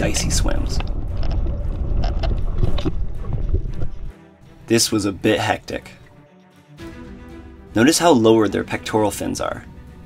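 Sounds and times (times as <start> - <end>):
low underwater rumble: 0.0 - 4.2
sharp underwater clicks and crackles: 0.6 - 4.1.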